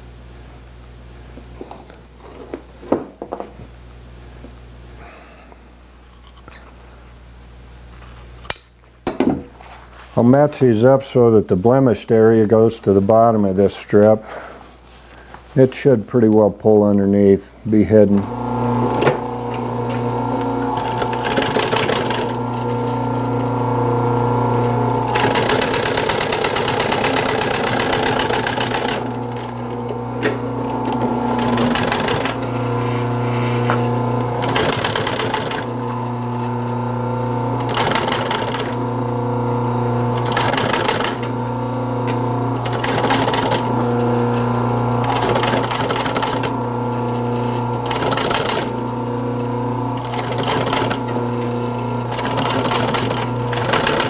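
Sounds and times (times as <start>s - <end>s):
motor humming: 17.9s - 54.0s
industrial sewing machine stitching: 18.1s - 54.0s.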